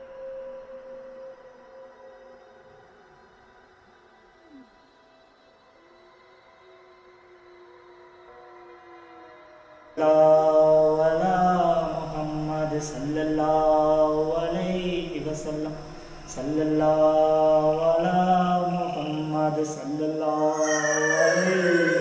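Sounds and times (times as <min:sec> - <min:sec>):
man chanting melodic recitation: 0:10.0 - 0:22.0.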